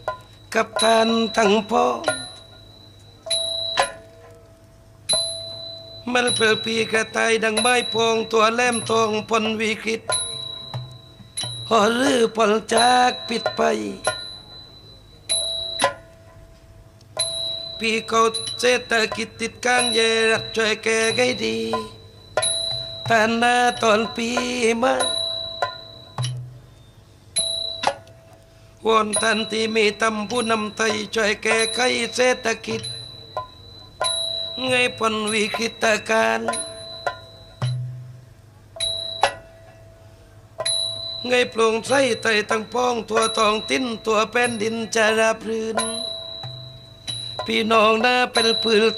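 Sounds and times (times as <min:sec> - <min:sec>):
bright metal percussion stroke: 0:00.0 - 0:04.4, 0:17.2 - 0:26.7, 0:29.1 - 0:38.2, 0:38.8 - 0:40.0, 0:40.6 - 0:45.0, 0:45.6 - 0:48.9
small hand cymbals ringing: 0:00.0 - 0:16.5, 0:17.1 - 0:26.8, 0:27.4 - 0:28.4, 0:29.0 - 0:48.9.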